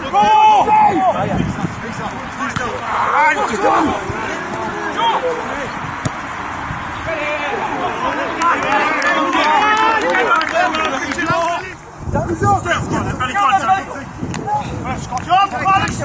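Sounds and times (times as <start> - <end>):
men shouting to each other: 0.0 - 1.4, 2.4 - 5.7, 7.0 - 16.0
steady outdoor noise: 0.0 - 16.0.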